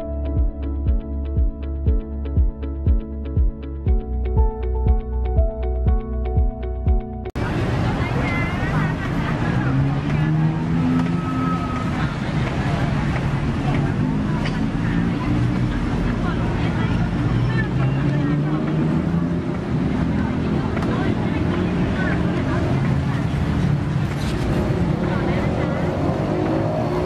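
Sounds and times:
many people talking: 0:07.4 - 0:27.0.

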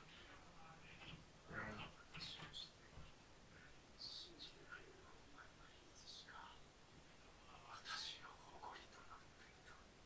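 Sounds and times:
faint whispered speech: 0:00.0 - 0:10.0.

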